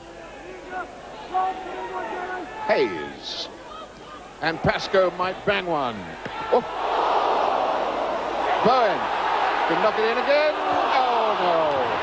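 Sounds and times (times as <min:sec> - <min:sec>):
football crowd reacting: 0:06.2 - 0:12.0.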